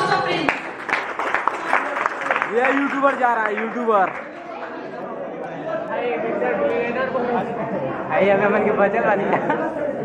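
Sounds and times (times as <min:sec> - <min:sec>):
crowd chattering in a large hall: 0:00.0 - 0:10.0.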